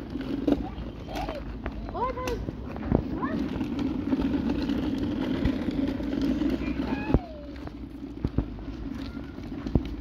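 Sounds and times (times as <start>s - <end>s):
toy car rumbling on asphalt: 0.0s - 10.0s.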